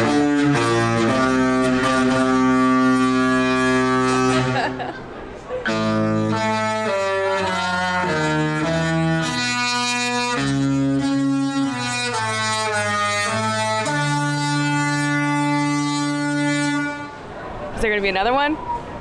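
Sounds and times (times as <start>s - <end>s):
musical ship horn playing a tune: 0.0s - 4.8s, 5.6s - 17.2s.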